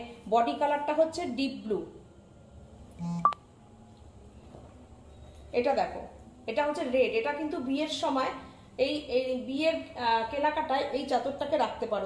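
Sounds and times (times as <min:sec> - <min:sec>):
short electronic beep: 0:03.0 - 0:03.4.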